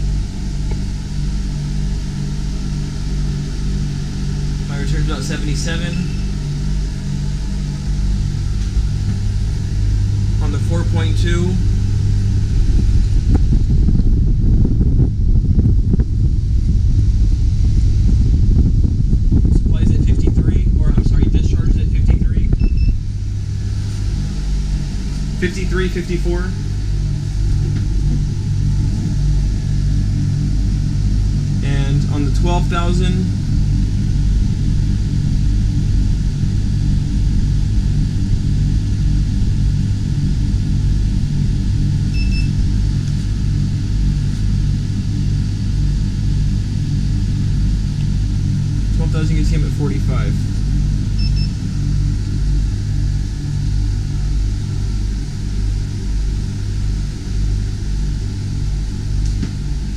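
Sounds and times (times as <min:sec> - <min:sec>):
air conditioner humming: 0:00.0 - 0:59.9
air blowing on microphone: 0:07.6 - 0:49.7
short electronic beep: 0:51.2 - 0:51.6.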